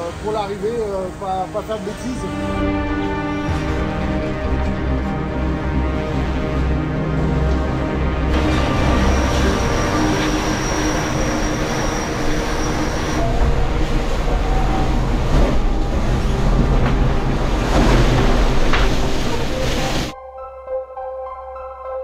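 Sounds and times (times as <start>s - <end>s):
yacht hull rumbling and rushing: 0.0s - 20.1s
thin high whine: 8.3s - 16.6s.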